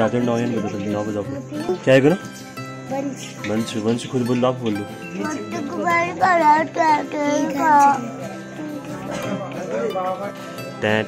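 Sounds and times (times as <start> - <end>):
girl's sing-song voice: 5.2 - 9.2.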